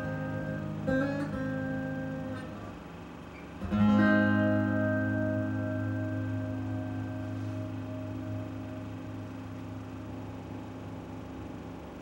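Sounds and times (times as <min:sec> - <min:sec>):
acoustic guitar chord ringing: 0:00.0 - 0:03.0, 0:03.6 - 0:11.8
low hum: 0:03.6 - 0:12.0.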